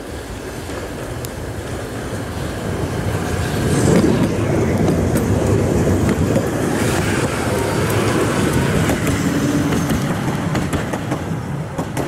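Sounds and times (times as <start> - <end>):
tram wheels rumbling on rails: 0.0 - 12.0.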